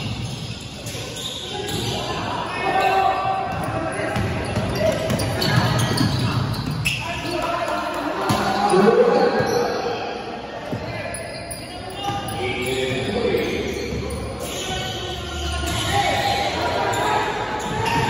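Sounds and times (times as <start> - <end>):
players calling out: 0.1 - 18.0.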